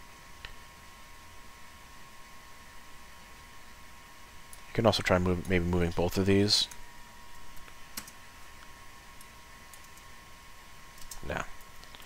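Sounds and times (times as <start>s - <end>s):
computer mouse and keyboard clicks: 7.6s - 8.2s, 10.9s - 12.0s.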